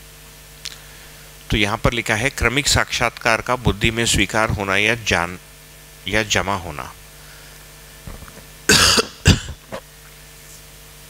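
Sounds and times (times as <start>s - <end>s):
person coughing: 8.1s - 9.8s
throat sound: 8.1s - 9.9s.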